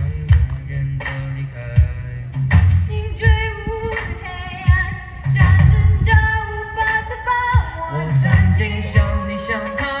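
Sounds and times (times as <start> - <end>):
drum beats: 0.0 - 10.0
live band accompaniment: 0.0 - 10.0.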